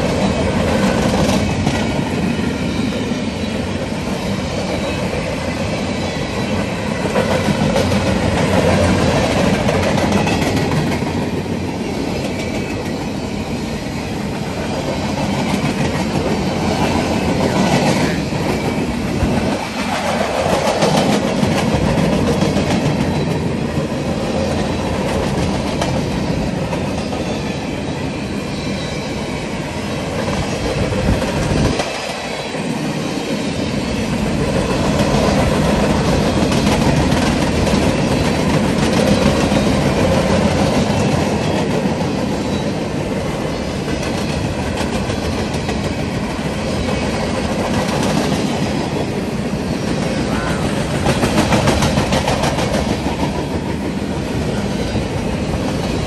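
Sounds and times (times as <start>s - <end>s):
freight train wheels rumbling on rails: 0.0s - 56.0s.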